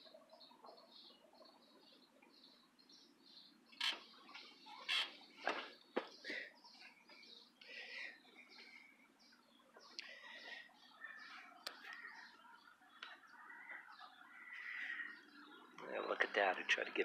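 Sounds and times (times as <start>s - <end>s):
birds chirping faintly: 0.0s - 17.0s.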